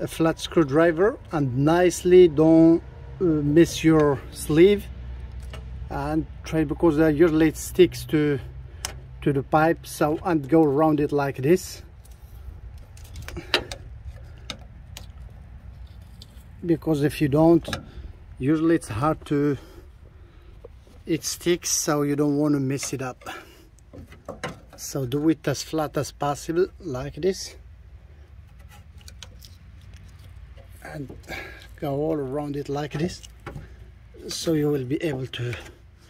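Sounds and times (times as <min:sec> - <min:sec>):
low steady rumble: 0:00.0 - 0:36.0.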